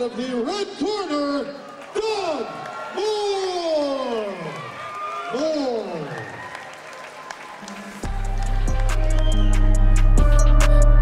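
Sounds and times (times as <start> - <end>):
crowd applauding: 1.2 - 10.7
loud music with heavy bass: 8.0 - 11.0.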